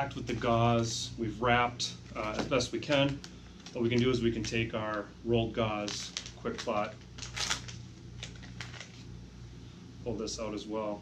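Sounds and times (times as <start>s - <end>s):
low room hum: 0.0s - 11.0s
wrapper crinkling: 2.0s - 9.1s.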